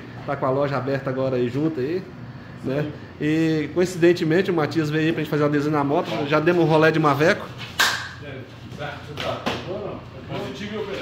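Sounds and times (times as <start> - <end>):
hand slapping a back: 7.6 - 8.2, 9.2 - 9.7.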